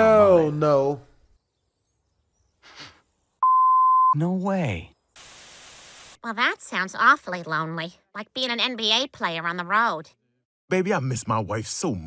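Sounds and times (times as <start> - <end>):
censor bleep tone: 3.4 - 4.2.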